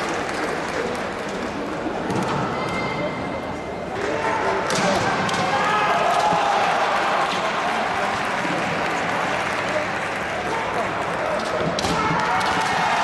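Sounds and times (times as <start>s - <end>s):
hall crowd noise: 0.0s - 13.0s
fencers shouting: 11.4s - 13.0s.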